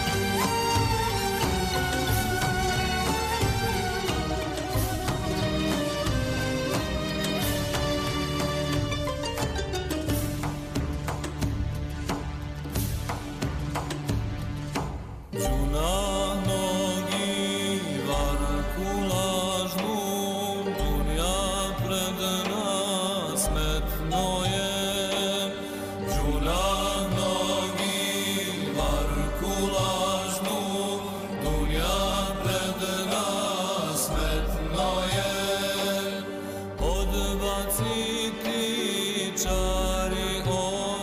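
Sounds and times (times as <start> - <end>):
choir singing a hymn: 15.4 - 41.0.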